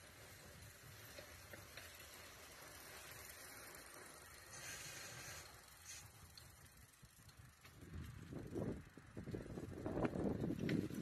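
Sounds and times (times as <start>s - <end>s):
faint steady hiss: 0.0s - 6.8s.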